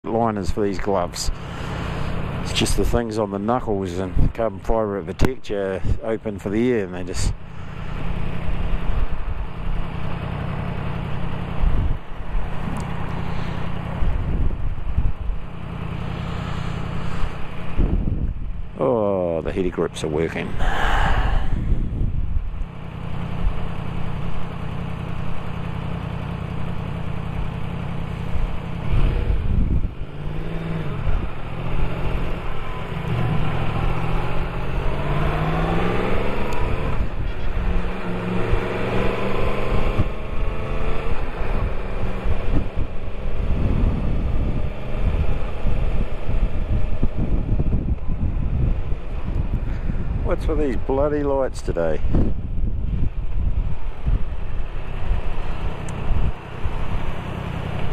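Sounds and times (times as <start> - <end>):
wind and road noise: 0.0 - 57.9
motorcycle engine accelerating: 6.6 - 51.1, 52.1 - 57.9.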